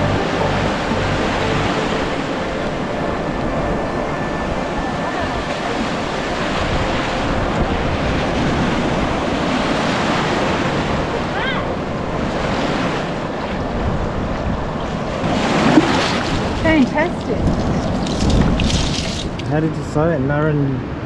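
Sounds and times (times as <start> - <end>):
surf breaking: 0.0 - 19.8
wind buffeting microphone: 0.0 - 21.0
water washing around legs: 15.6 - 19.5.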